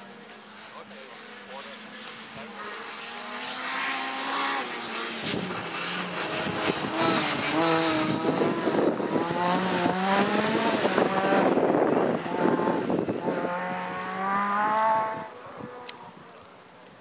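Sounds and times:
rally car engines revving: 0.0 - 17.0.

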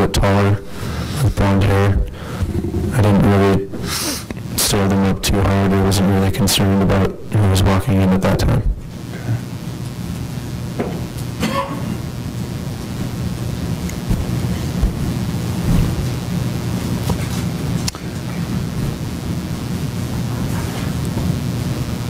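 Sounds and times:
low rumble and hum with static: 0.0 - 22.0.

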